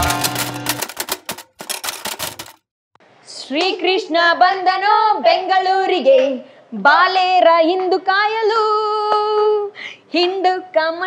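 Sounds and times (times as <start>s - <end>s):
typewriter key clicks: 0.0s - 2.6s.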